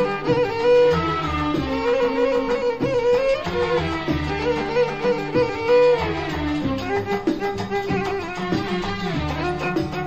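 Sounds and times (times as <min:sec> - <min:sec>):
violin section playing melody: 0:00.0 - 0:10.0.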